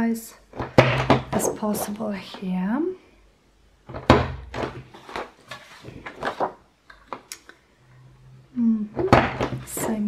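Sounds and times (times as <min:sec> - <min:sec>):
paper being handled: 0:04.6 - 0:06.6.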